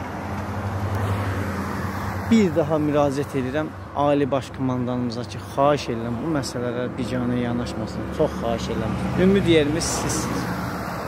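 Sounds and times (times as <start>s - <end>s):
tyre and road noise: 0.0s - 11.0s
vehicle engine hum: 0.0s - 11.0s.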